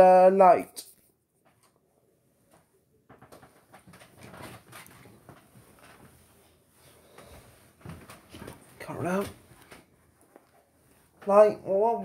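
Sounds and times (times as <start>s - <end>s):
bedding rustling: 3.2s - 11.6s.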